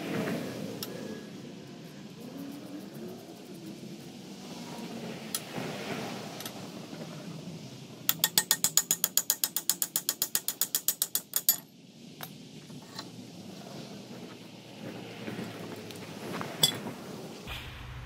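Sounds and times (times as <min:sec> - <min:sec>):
ratchet wrench clicking: 0:08.1 - 0:11.6.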